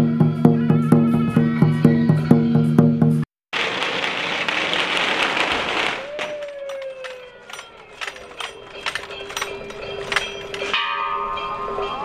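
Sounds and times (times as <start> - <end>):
bell-like metal percussion: 6.3 - 12.0.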